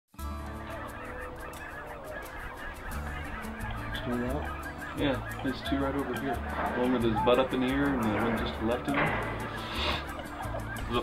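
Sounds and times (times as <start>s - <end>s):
geese honking: 0.2s - 11.0s.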